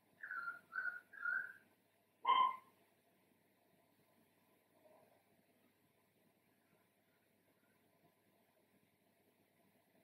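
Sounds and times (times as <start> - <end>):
whistle-like animal calls: 2.3 - 2.7.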